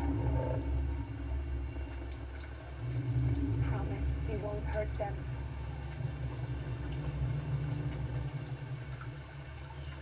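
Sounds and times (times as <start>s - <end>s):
deep rumble: 0.0s - 10.0s.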